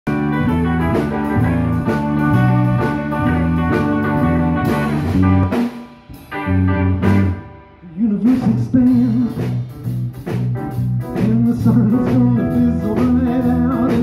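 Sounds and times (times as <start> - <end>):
electric blues band playing: 0.1 - 14.0.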